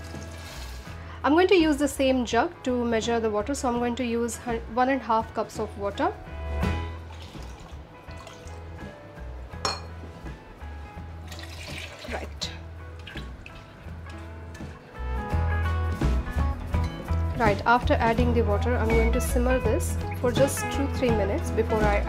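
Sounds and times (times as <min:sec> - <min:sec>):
water pouring into pot: 0:00.0 - 0:01.0, 0:07.0 - 0:08.7, 0:11.2 - 0:14.8
background music with bass: 0:00.0 - 0:22.0.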